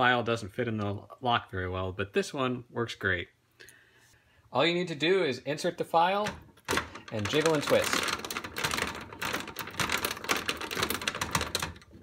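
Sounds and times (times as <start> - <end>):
metal file rattling in lock: 6.2 - 12.0.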